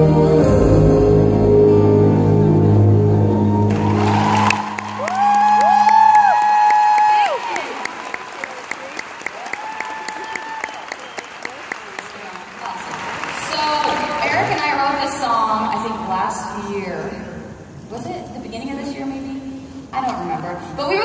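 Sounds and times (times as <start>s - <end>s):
person singing: 0.0s - 3.5s
audience applauding and cheering: 3.0s - 14.9s.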